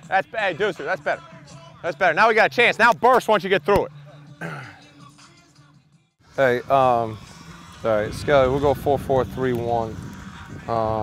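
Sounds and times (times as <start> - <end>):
faint background music: 0.0 - 11.0
low grunt or throat clear: 4.4 - 4.8.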